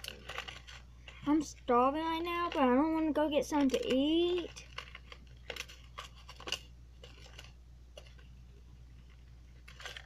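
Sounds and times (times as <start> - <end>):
fingers clicking and scratching box: 2.2 - 8.3.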